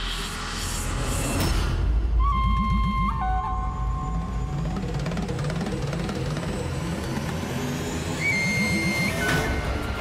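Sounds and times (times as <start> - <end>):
dramatic music with low percussion: 0.0 - 10.0.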